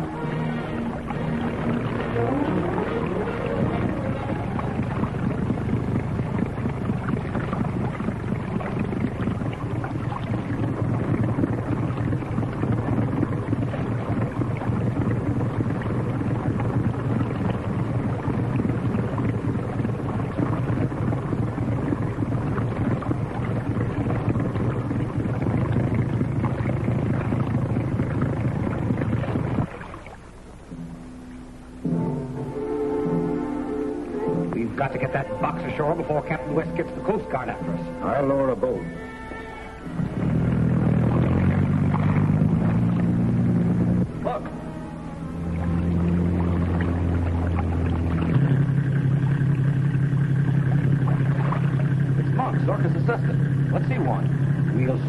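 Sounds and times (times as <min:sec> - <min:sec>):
motorboat engine droning: 0:00.0 - 0:55.0
rushing water: 0:00.0 - 0:55.0.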